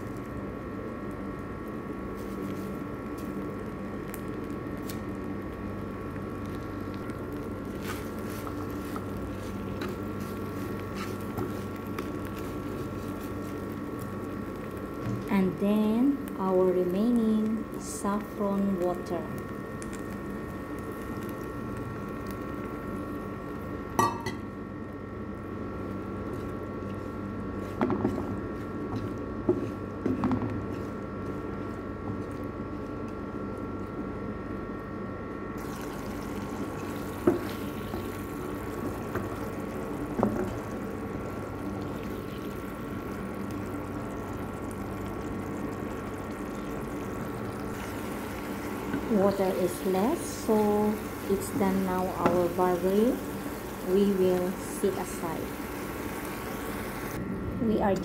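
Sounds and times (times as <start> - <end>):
steady hum: 0.0 - 58.0
water pouring into a pan: 35.6 - 39.9
liquid simmering: 35.6 - 51.7.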